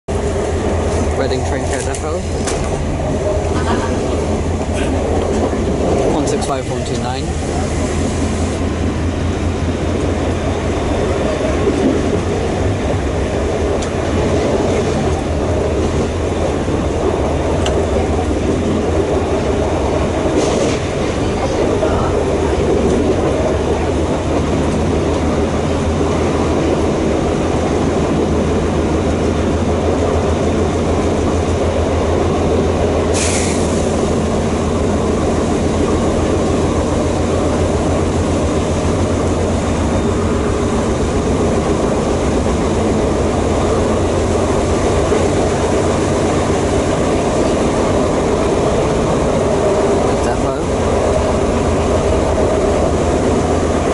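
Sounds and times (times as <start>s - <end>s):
train wheels rumbling on rail: 0.1s - 53.9s.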